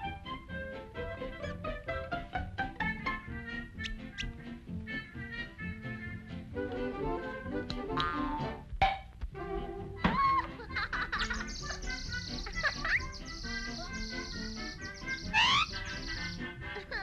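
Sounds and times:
orchestral cartoon music: 0.0s - 17.0s.

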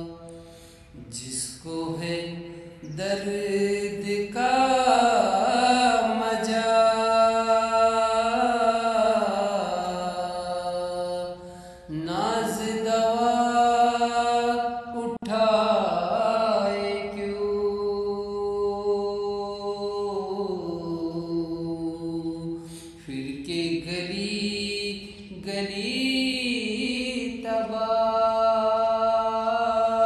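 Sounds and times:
man singing unaccompanied: 1.0s - 30.0s.

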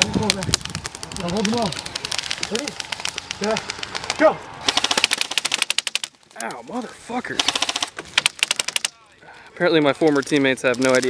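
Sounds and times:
airsoft rifle full-auto firing: 4.6s - 6.1s, 7.4s - 8.9s.

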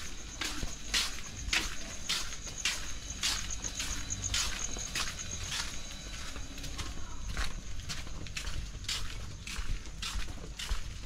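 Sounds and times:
footsteps on stone: 0.0s - 11.0s.

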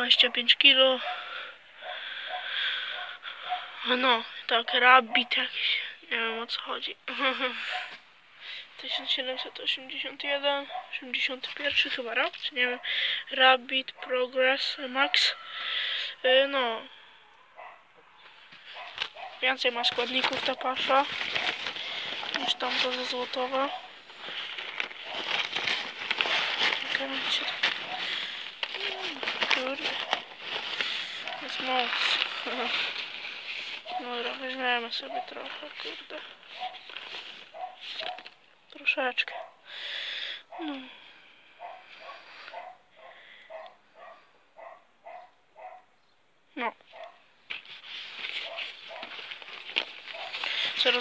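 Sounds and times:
dog barking: 0.1s - 3.9s, 5.0s - 5.5s, 7.6s - 8.0s, 8.9s - 9.7s, 10.6s - 11.0s, 12.7s - 13.0s, 13.9s - 14.3s, 15.0s - 15.5s, 17.3s - 20.7s, 22.4s - 22.7s, 23.6s - 24.0s, 27.3s - 28.2s, 29.9s - 30.3s, 31.2s - 31.6s, 33.8s - 34.2s, 35.0s - 35.5s, 36.5s - 36.9s, 37.5s - 38.4s, 39.2s - 39.7s, 41.6s - 45.9s, 46.9s - 47.3s, 48.4s - 49.2s, 50.1s - 50.5s
plastic sack liner crinkling: 18.6s - 38.4s, 47.5s - 51.0s
rustle of dry feed pellets: 19.9s - 38.3s, 47.6s - 51.0s.

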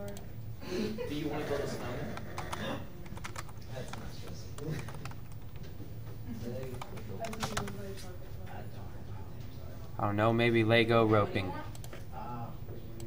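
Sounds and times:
computer keyboard typing: 2.2s - 5.8s, 6.5s - 8.0s.

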